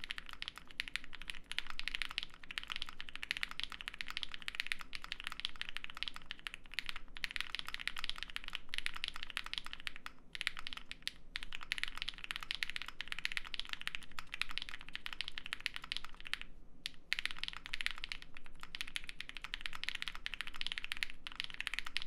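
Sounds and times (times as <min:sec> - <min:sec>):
mechanical keyboard typing: 0:00.0 - 0:22.0.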